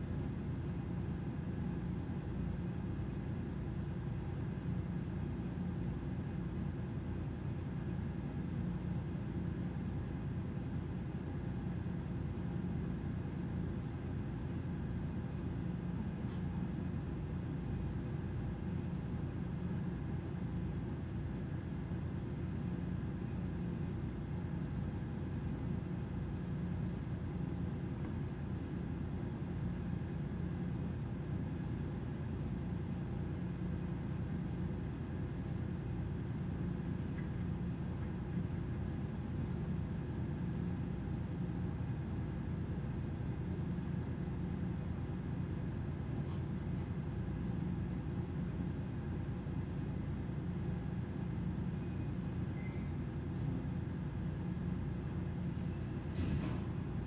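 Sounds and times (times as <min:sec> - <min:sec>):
low machinery hum: 0:00.0 - 0:57.0.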